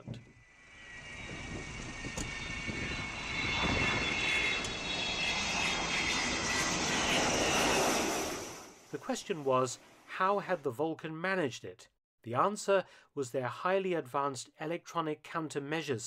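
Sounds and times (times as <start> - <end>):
jet roar: 0.0 - 8.9
high whining tones: 0.0 - 9.0.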